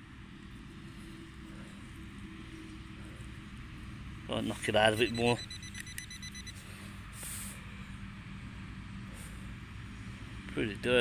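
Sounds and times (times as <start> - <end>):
low outdoor background rumble: 0.0 - 11.0.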